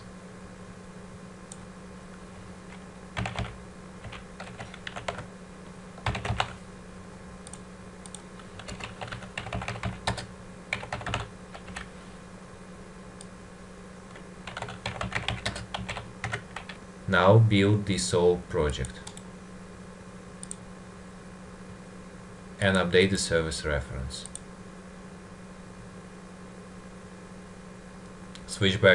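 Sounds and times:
faint steady hum: 0:00.0 - 0:28.9
typing on a computer keyboard: 0:03.2 - 0:05.3, 0:06.0 - 0:06.6, 0:07.5 - 0:11.9, 0:14.5 - 0:16.8.

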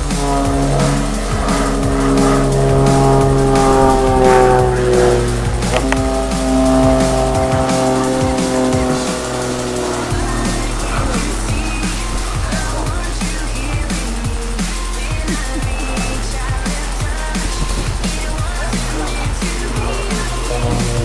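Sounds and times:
propeller plane engine droning: 0:00.0 - 0:21.0.

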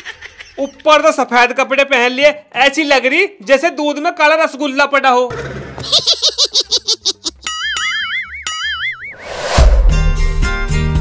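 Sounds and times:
rising whoosh: 0:09.0 - 0:10.4.

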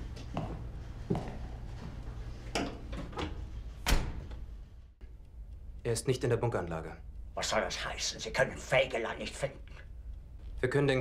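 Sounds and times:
low steady hum: 0:00.0 - 0:11.0
door shutting with heavy thud: 0:03.0 - 0:04.4.

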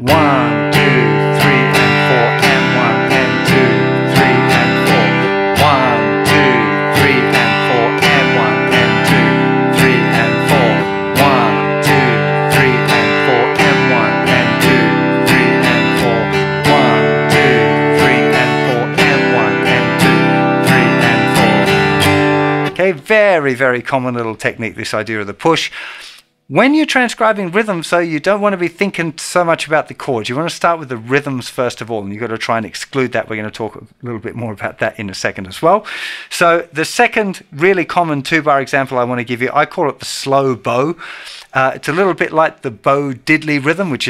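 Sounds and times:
acoustic guitar strumming: 0:00.0 - 0:23.4.

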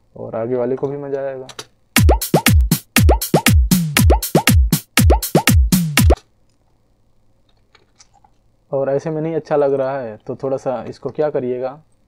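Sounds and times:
deep kick drum hits: 0:02.0 - 0:06.2
snare drum strokes: 0:02.0 - 0:06.2.

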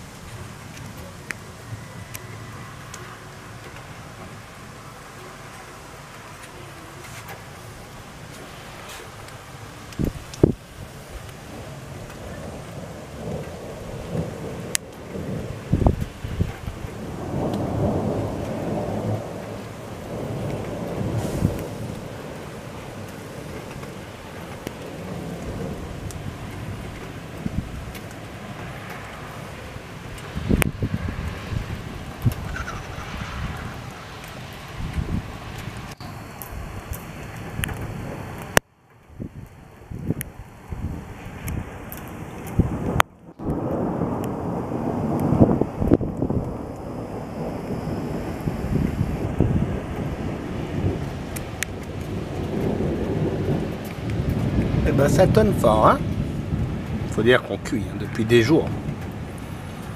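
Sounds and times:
rain hissing: 0:00.0 - 0:59.9
thunder rumbling: 0:00.0 - 0:59.9.

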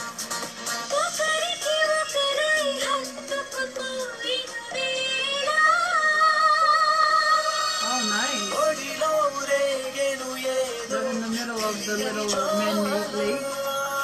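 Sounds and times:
film song with high singing voice: 0:00.0 - 0:14.0.

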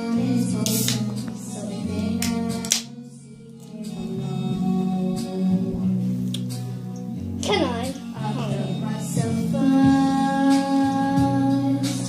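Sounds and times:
pop song with guitar backing: 0:00.0 - 0:12.0
girl singing: 0:07.4 - 0:12.0.

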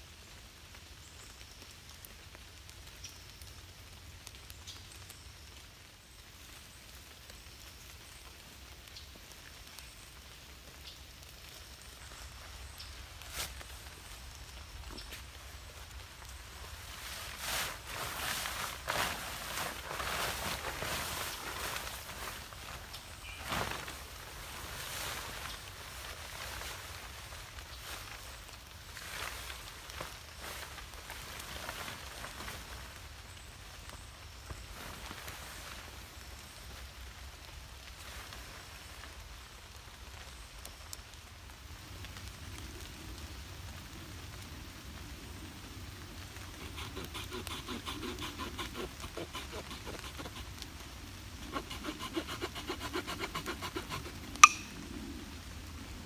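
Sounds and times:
faint rustling and handling noise: 0:06.5 - 0:52.0
hand saw cutting through stick: 0:46.6 - 0:50.6, 0:51.4 - 0:54.7.

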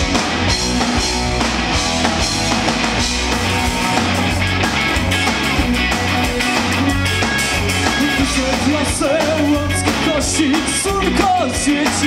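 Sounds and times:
bass guitar: 0:00.0 - 0:12.0
drum kit: 0:00.0 - 0:12.0
electric guitar: 0:00.0 - 0:12.0
person singing: 0:06.8 - 0:12.0.

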